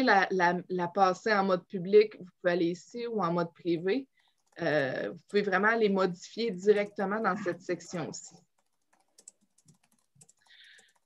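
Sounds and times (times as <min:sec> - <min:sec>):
computer clicks: 0:07.6 - 0:11.0.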